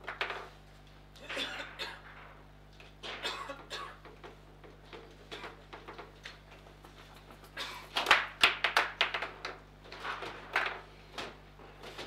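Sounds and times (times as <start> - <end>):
table football knocks and clacks: 8.0 - 9.6.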